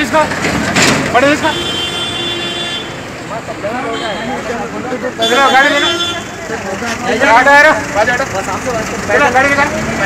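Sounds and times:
vehicle horn steady note: 1.5 - 3.0
people's voices: 2.9 - 10.0.

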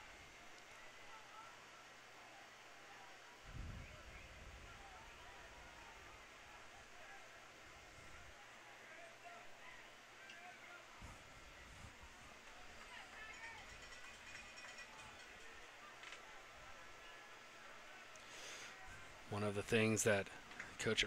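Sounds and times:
distant indistinct voices: 0.0 - 21.0.

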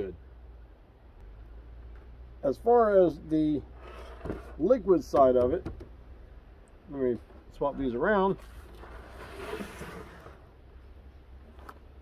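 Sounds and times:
plastic sliding across tabletop: 3.8 - 4.6, 8.4 - 10.5.

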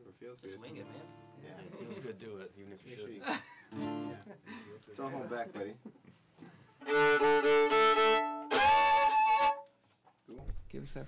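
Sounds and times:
fiddle playing: 6.8 - 9.8.

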